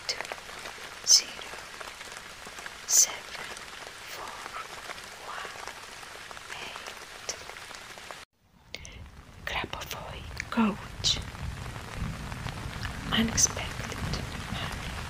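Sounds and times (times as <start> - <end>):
steady rain: 0.0 - 15.0.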